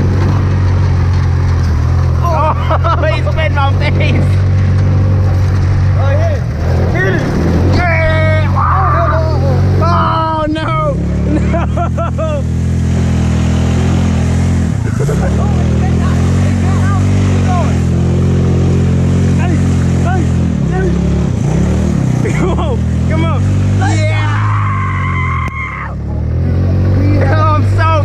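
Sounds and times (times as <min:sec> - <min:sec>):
go-kart engine running: 0:00.0 - 0:28.0
people shouting: 0:07.8 - 0:10.7, 0:23.2 - 0:26.1.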